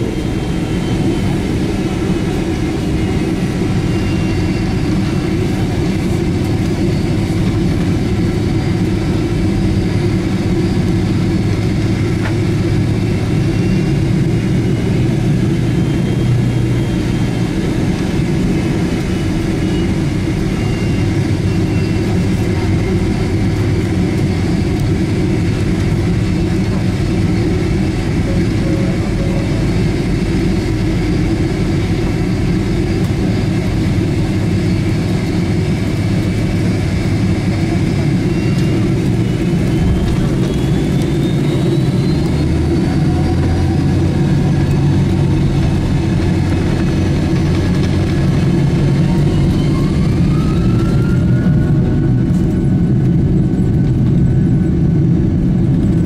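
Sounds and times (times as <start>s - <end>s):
jet engine roar: 0.0s - 56.0s
jet engine whine: 0.0s - 56.0s.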